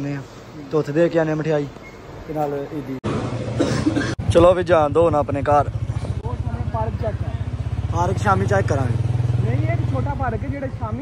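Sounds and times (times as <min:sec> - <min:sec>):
small motorcycle engine running: 0:04.2 - 0:11.0.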